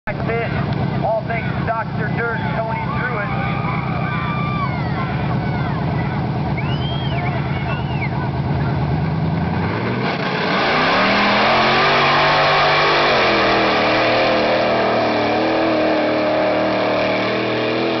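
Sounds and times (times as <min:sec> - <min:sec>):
truck engine idling and revving: 0:00.0 - 0:18.0
announcer talking over loudspeaker: 0:00.1 - 0:04.2.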